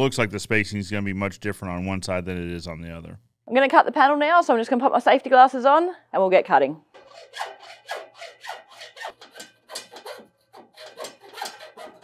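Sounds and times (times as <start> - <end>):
hacksaw cutting metal: 6.9 - 12.0.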